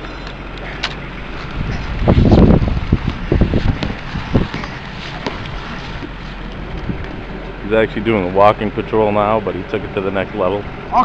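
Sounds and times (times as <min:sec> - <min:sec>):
steady low rumble: 0:00.0 - 0:11.0
wind buffeting microphone: 0:00.0 - 0:11.0.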